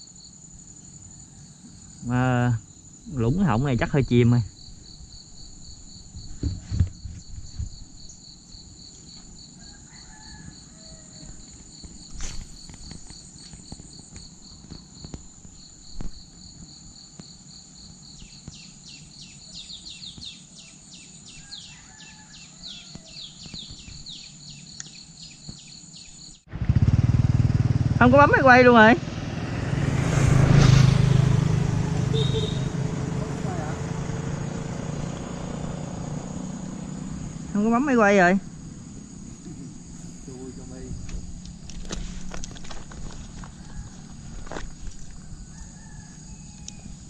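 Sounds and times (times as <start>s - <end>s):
insects trilling: 0.0s - 26.5s, 30.0s - 47.0s
bird chirping: 18.1s - 26.5s, 32.1s - 32.7s
motorcycle engine rumble: 26.5s - 47.0s.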